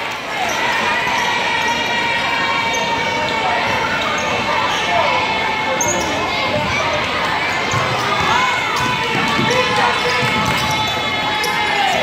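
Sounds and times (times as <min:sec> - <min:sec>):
crowd voices hubbub: 0:00.0 - 0:12.0
shoes squeaking on court: 0:02.6 - 0:12.0
basketball bouncing on wood floor: 0:07.7 - 0:11.0.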